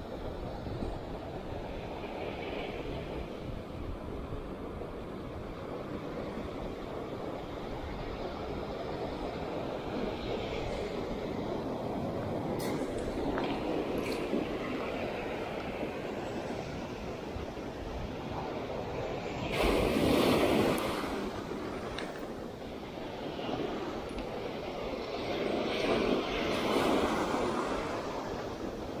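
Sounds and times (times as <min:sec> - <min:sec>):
sea surf washing on sand: 0:00.0 - 0:29.0.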